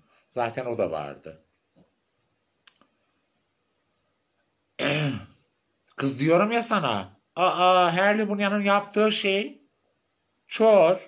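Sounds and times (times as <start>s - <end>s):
faint click: 2.6s - 3.0s.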